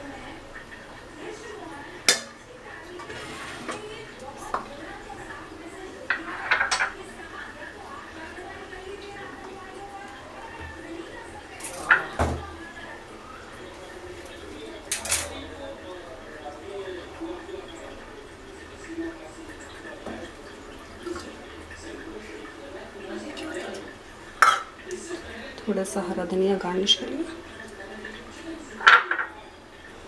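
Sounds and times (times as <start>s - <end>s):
utensils clinking on dishware: 6.1s - 7.0s, 14.9s - 15.4s, 24.4s - 24.7s, 28.8s - 29.4s.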